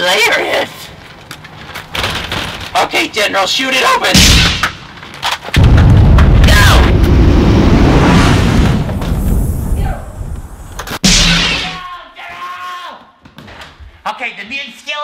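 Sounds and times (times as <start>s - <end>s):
deep explosion boom: 5.6s - 10.6s
explosion blast: 5.6s - 11.8s.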